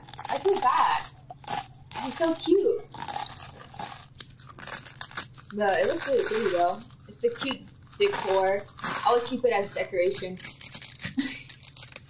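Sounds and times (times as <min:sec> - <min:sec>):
crisp crunching and chewing: 0:00.0 - 0:12.0.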